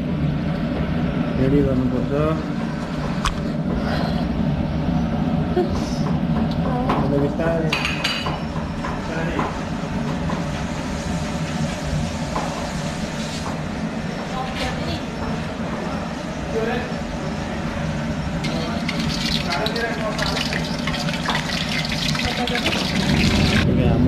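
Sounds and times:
food deep-frying in hot oil: 18.3s - 23.6s.

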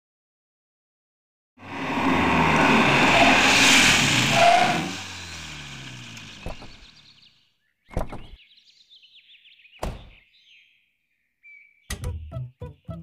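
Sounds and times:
car driving by: 1.6s - 7.2s.

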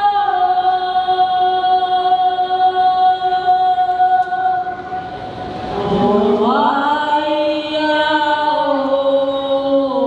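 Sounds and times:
voices chanting a sustained note: 0.0s - 10.0s.

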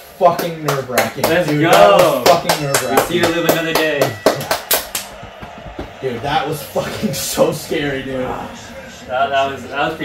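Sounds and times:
hand claps and slaps: 0.2s - 6.0s.

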